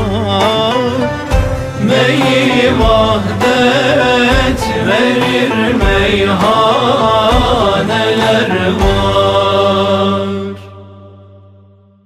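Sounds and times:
person singing: 0.0 - 11.2
drum beat: 1.3 - 9.6.

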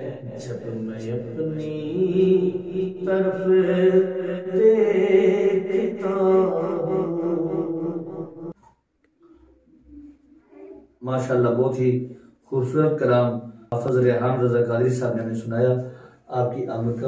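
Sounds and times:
man singing unaccompanied: 0.0 - 8.5.

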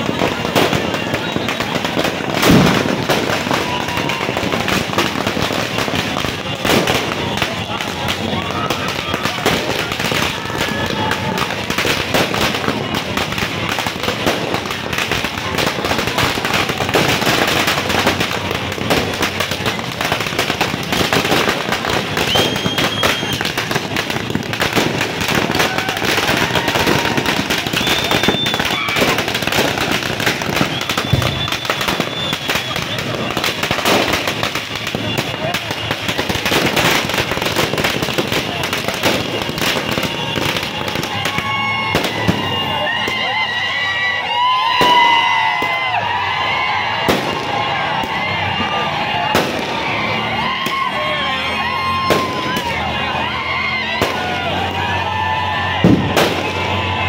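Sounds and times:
firecrackers bursting: 0.0 - 57.0
people shouting: 0.0 - 57.0
high-pitched whistles: 27.6 - 29.1, 30.4 - 33.0.

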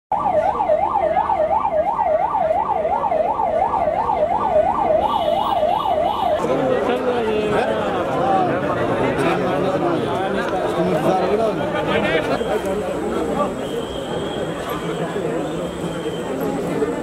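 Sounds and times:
siren wailing: 0.1 - 8.8
crowd voices: 0.1 - 17.0.

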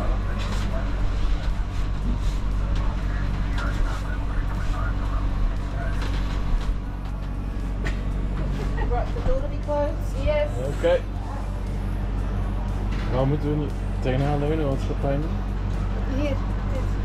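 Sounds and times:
low rumble and hum: 0.0 - 17.0.

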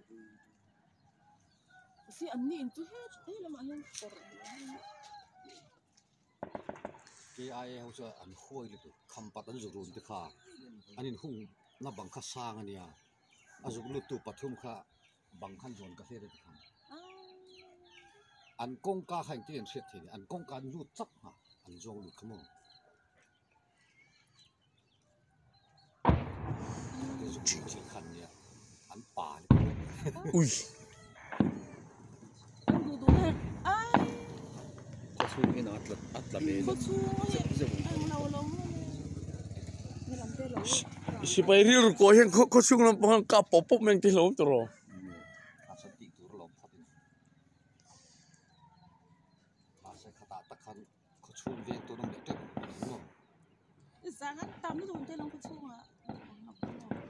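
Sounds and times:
rooster crowing: 0.0 - 5.8, 13.5 - 14.8, 19.2 - 20.4, 26.6 - 29.4, 30.1 - 32.3, 44.7 - 48.2
rooster crowing faintly: 0.0 - 5.9, 44.5 - 50.8
small birds chirping: 0.0 - 57.0
voices: 2.0 - 5.8, 7.1 - 13.0, 26.6 - 47.0, 49.8 - 53.1, 54.0 - 57.0.

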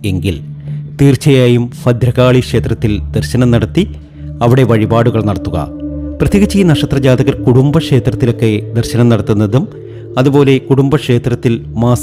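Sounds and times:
soft background music: 0.0 - 12.0
man speaking: 1.0 - 12.0.

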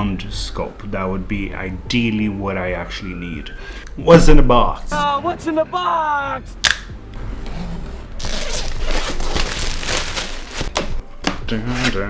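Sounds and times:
packaging tearing and crinkling: 8.2 - 10.9.

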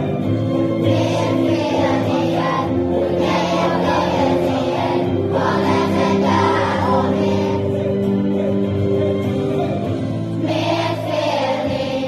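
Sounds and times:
children's choir singing: 0.0 - 12.0
low musical backing: 0.0 - 12.0.

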